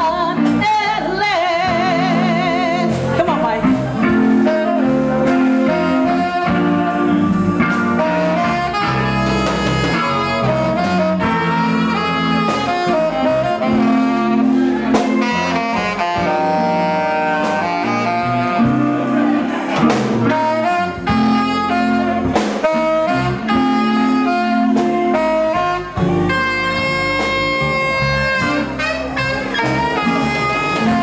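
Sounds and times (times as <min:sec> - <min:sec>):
blues band playing: 0:00.0 - 0:31.0
saxophone melody: 0:00.0 - 0:31.0
drum hits: 0:19.6 - 0:20.4.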